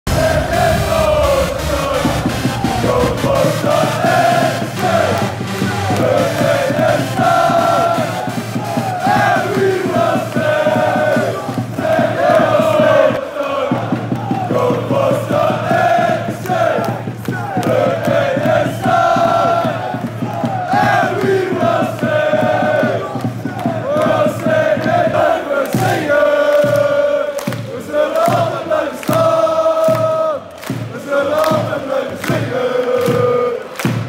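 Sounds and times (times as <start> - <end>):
crowd chanting a song: 0.0 - 34.0.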